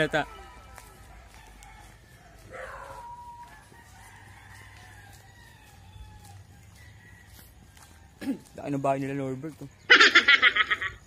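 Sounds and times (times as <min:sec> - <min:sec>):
rooster crowing: 0:00.1 - 0:08.7.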